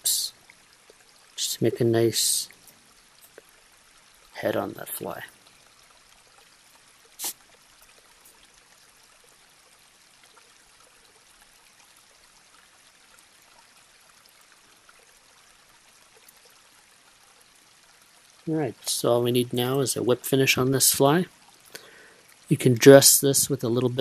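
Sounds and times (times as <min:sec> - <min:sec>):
faint room tone hiss: 0:00.0 - 0:24.0.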